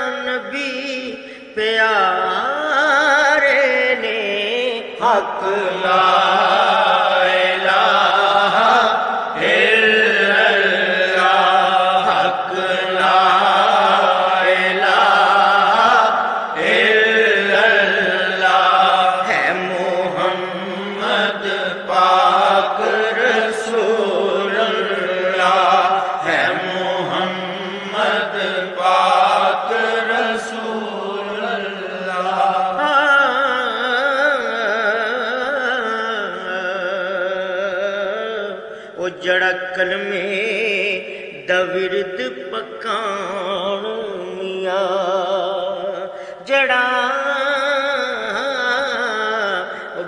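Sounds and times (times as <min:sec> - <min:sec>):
solo voice chanting: 0:00.0 - 0:50.0.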